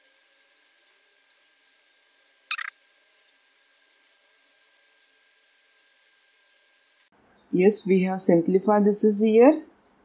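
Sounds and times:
marker squeaking on paper: 2.5 - 2.7.

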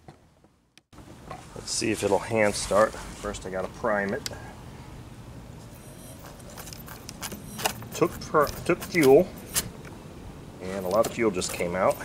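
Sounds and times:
handling noise: 5.6 - 10.0, 10.6 - 12.0.

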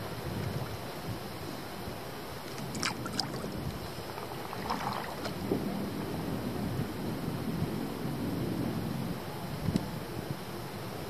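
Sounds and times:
wind rumbling on microphone: 0.0 - 11.0
water splashing and lapping: 2.4 - 5.8.

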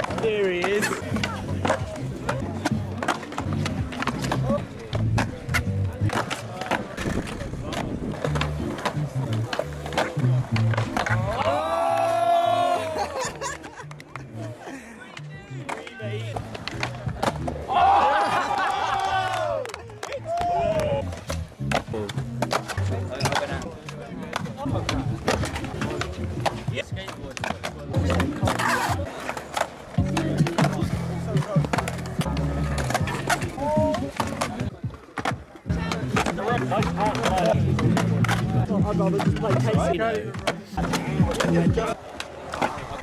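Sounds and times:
skateboard pops and clacks: 0.0 - 12.1, 15.2 - 17.6, 18.4 - 43.0
skateboard wheels rolling: 0.0 - 43.0.

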